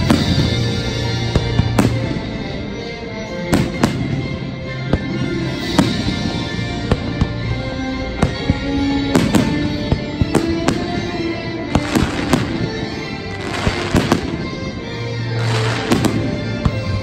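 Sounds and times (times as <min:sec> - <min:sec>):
loud show music: 0:00.0 - 0:17.0.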